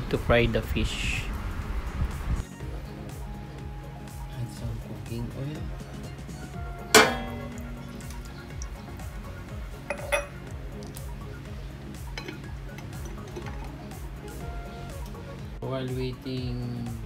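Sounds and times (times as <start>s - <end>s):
background music: 2.4s - 17.0s
glass jar clinking on metal pan: 7.0s - 8.6s, 9.7s - 10.5s, 12.1s - 13.7s.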